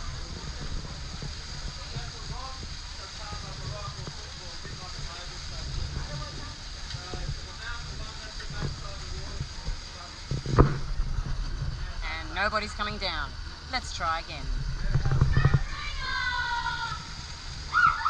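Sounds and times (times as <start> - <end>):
faint distant voices: 0.0 - 12.0
steady low rumble: 0.0 - 18.0
water gushing and splashing: 0.0 - 18.0.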